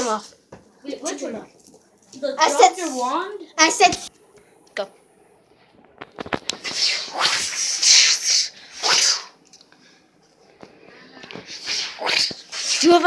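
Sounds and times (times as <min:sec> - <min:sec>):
child making breathy hissing: 0:06.6 - 0:09.4, 0:11.5 - 0:12.9.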